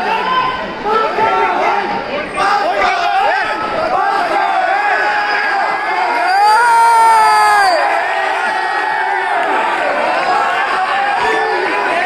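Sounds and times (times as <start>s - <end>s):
audience shouting and cheering: 0.0s - 12.0s
long drawn-out shout: 2.5s - 12.0s.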